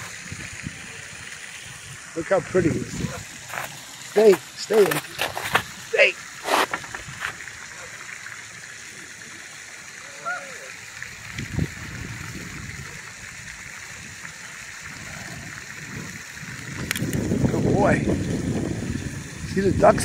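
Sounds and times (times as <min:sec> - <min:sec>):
fountain splashing: 0:00.0 - 0:20.0
faint call: 0:10.0 - 0:10.8.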